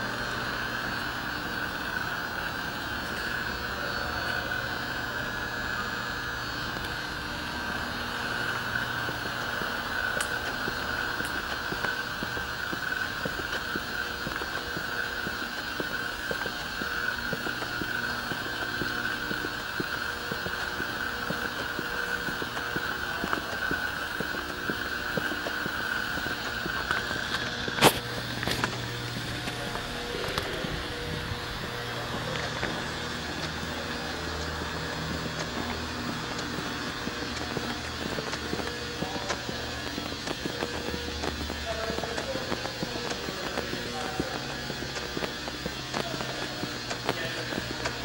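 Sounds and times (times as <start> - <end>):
high steady whine: 0.0 - 48.0
warehouse mechanical hum: 0.0 - 48.0.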